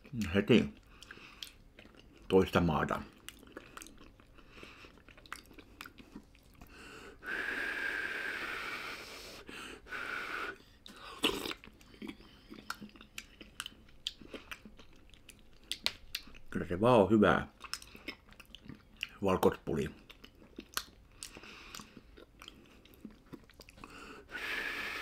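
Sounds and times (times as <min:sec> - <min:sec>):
wet chewing and lip-smacking: 0:00.0 - 0:06.8, 0:10.6 - 0:16.6, 0:17.5 - 0:24.4
airy hiss with faint whistle: 0:07.2 - 0:10.6.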